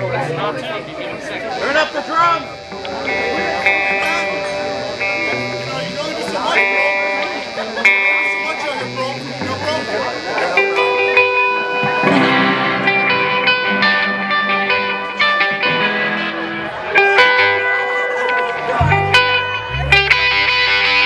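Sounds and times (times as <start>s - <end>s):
voices chattering: 0.0s - 13.4s, 16.0s - 21.0s
electric guitar through amplifier: 0.0s - 21.0s.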